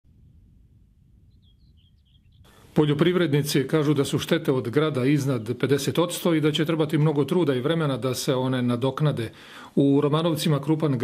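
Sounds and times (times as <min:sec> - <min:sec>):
bird chirping: 0:01.1 - 0:02.8.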